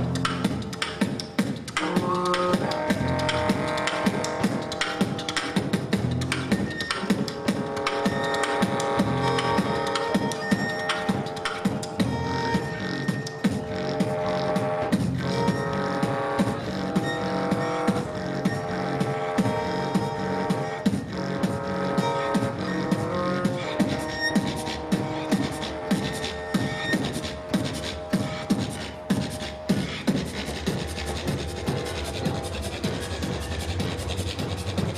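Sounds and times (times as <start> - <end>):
beatboxing: 0.0 - 34.9
violin melody: 1.8 - 29.7.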